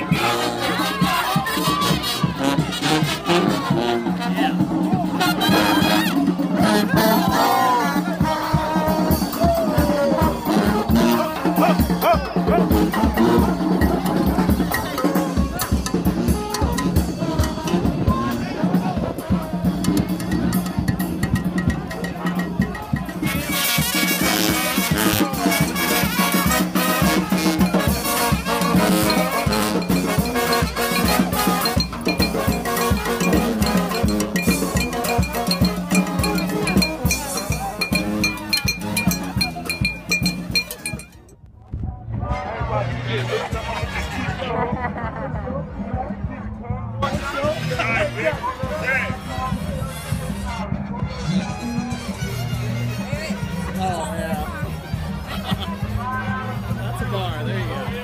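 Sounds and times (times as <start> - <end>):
brass band playing: 0.0 - 41.3, 47.0 - 58.0
drums and cymbals beat: 0.0 - 41.4
crowd voices: 0.0 - 58.0
sousaphone bass line: 0.7 - 44.7.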